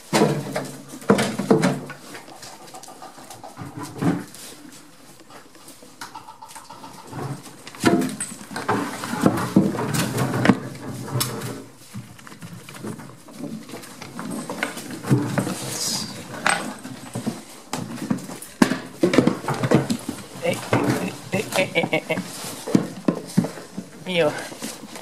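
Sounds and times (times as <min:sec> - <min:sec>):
goats rustling and scuffling: 0:00.0 - 0:25.0.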